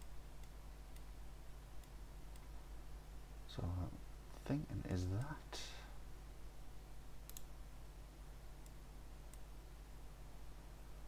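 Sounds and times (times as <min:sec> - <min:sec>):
computer mouse clicks: 0:00.0 - 0:01.1, 0:01.8 - 0:02.5, 0:07.2 - 0:07.5
low steady hum: 0:00.0 - 0:11.0.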